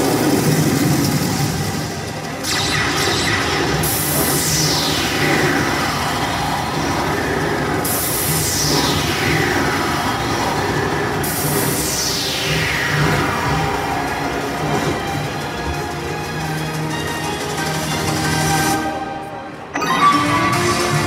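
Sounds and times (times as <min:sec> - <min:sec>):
noisy sweeps falling in pitch: 0:00.0 - 0:15.9
backing music: 0:00.0 - 0:21.0.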